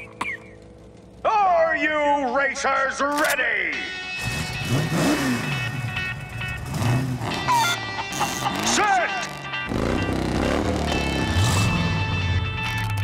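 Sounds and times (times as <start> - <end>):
cartoon engines revving: 4.2 - 12.4.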